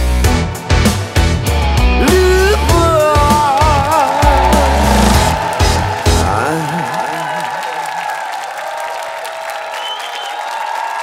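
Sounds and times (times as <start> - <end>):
live pop band final hits: 1.2 - 8.0
audience applauding: 3.1 - 11.0.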